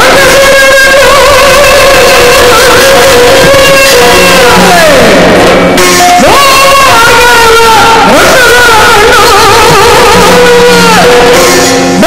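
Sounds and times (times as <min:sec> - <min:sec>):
steady drone: 0:00.1 - 0:12.0.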